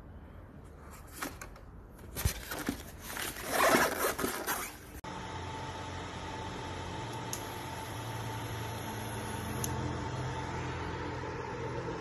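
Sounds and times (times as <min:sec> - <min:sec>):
rustling plastic packaging: 0:01.0 - 0:05.0
induction cooker fan hum: 0:05.0 - 0:12.0.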